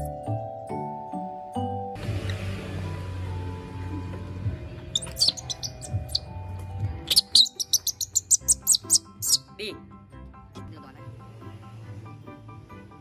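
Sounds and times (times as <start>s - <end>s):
background music: 0.0s - 13.0s
short high-pitched chirps: 5.0s - 6.2s, 7.1s - 9.4s.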